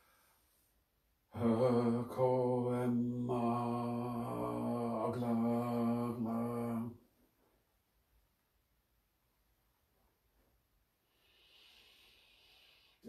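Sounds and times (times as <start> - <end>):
person chanting low intoned call: 1.4 - 6.9.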